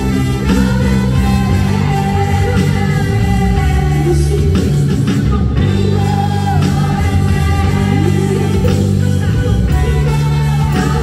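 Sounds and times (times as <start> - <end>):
electric bass low notes: 0.0 - 11.0
trumpet held notes: 0.0 - 11.0.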